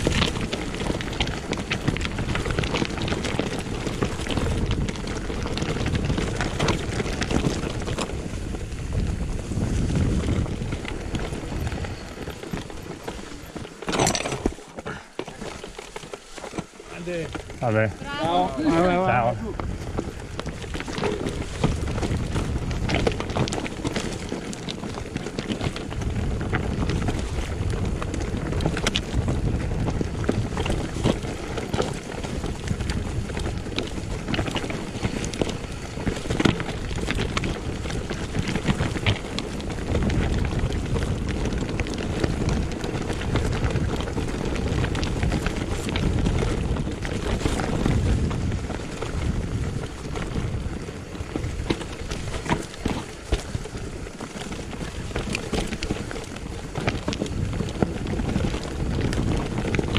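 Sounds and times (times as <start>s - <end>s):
wind buffeting microphone: 0.0s - 15.6s, 16.9s - 59.9s
bike clicks and rattles: 0.0s - 59.9s
bike tyres rolling over stones: 0.0s - 59.9s.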